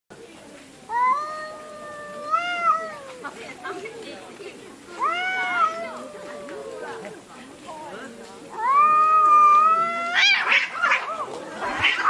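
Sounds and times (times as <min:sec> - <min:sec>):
cats yowling: 0:00.9 - 0:03.4, 0:05.0 - 0:07.2, 0:08.5 - 0:12.0.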